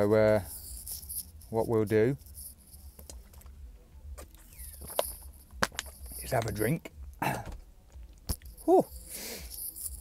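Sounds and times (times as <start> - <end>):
faint low hum: 0.0 - 10.0
plastic bottle crackling: 4.2 - 6.6
bottle cap twisting open: 4.4 - 6.6.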